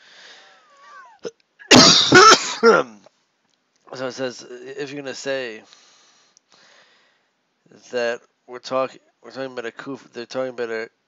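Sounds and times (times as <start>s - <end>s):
man coughing: 0.8s - 3.0s.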